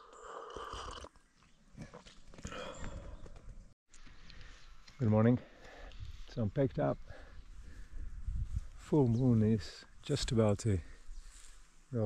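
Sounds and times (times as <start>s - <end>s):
slurping sip of coffee: 0.0s - 1.2s.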